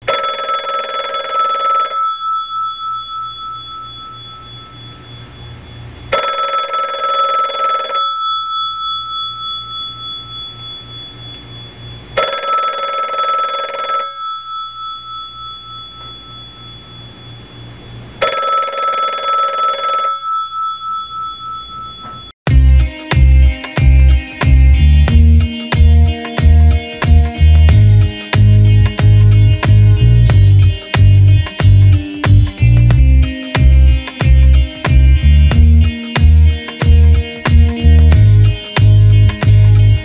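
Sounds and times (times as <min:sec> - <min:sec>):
telephone bell ringing: 0:00.0 - 0:05.5, 0:06.1 - 0:11.5, 0:12.2 - 0:17.6, 0:18.2 - 0:22.3, 0:25.4 - 0:27.4, 0:33.2 - 0:34.9, 0:35.9 - 0:37.5.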